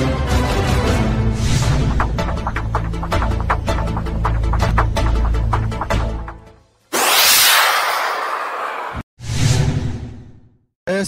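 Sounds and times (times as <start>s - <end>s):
whoosh: 6.9s - 10.0s.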